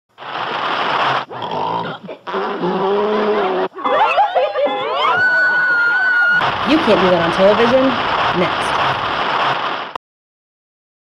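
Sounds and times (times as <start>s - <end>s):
person growling raspily: 1.3s - 3.8s.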